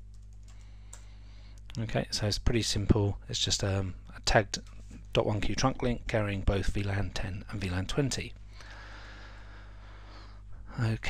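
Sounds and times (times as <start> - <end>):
keyboard typing: 0.0 - 1.1
steady low hum: 0.0 - 11.0.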